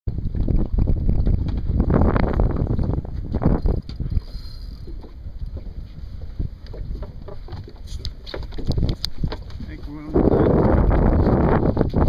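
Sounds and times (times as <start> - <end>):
water lapping against boat hull: 0.1 - 12.0
wind rumbling on microphone: 0.1 - 12.0.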